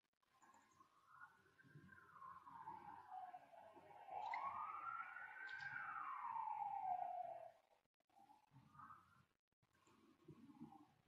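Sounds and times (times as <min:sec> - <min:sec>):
faint siren wailing: 0:02.4 - 0:07.6.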